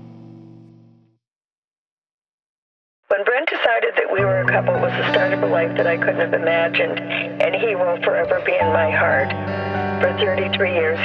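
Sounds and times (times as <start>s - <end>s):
radio-like voices talking: 3.1s - 9.4s, 10.0s - 11.0s
held low music notes: 4.2s - 11.0s.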